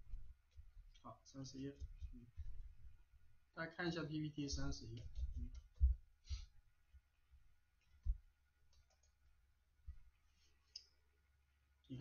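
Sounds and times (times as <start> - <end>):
computer mouse clicks: 8.7 - 9.2.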